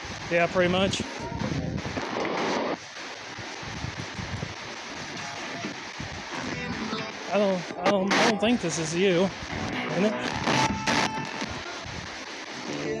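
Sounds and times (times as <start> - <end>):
radio static hiss: 0.0 - 13.0
rush of noise: 0.0 - 13.0
chopped music fragments: 3.0 - 13.0
chopped voice fragments: 3.7 - 13.0.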